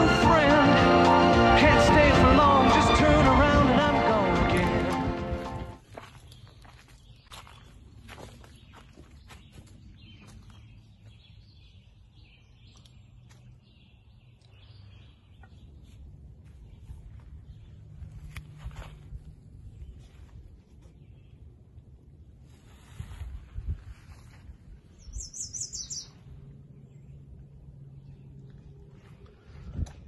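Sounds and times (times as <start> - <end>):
man singing song: 0.0 - 5.6
low steady hum: 23.7 - 30.0
birds chirping: 25.0 - 29.5.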